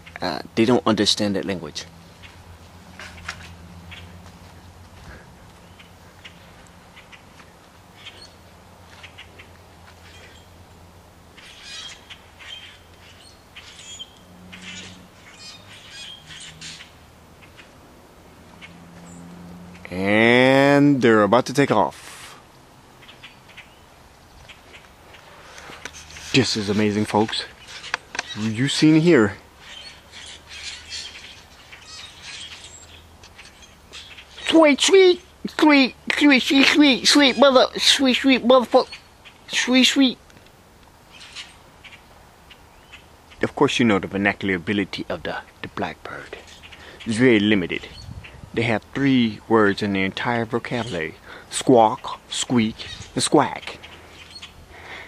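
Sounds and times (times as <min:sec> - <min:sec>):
blackbirds calling: 0:00.0 - 0:55.0
flock of birds squawking: 0:02.0 - 0:10.6, 0:11.3 - 0:20.2, 0:22.9 - 0:35.4, 0:36.1 - 0:40.2, 0:41.1 - 0:43.4, 0:46.3 - 0:48.4, 0:50.7 - 0:55.0.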